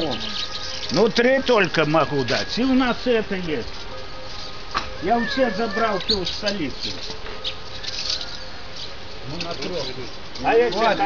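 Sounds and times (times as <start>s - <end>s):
outdoor background noise: 0.0s - 11.0s
small birds chirping: 0.0s - 11.0s.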